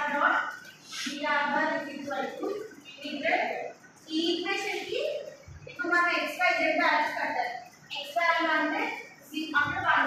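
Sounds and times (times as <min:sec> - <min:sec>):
woman lecturing: 0:00.0 - 0:10.0.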